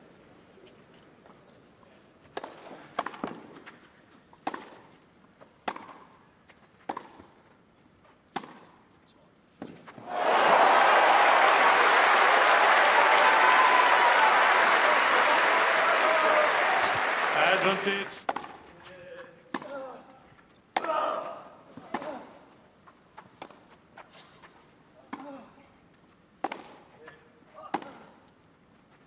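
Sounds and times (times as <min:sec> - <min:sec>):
tennis ball struck by rackets: 0:04.4 - 0:04.9, 0:05.6 - 0:06.1, 0:06.8 - 0:07.3, 0:08.3 - 0:08.8, 0:26.4 - 0:26.8
crowd cheering and applauding: 0:10.0 - 0:18.2.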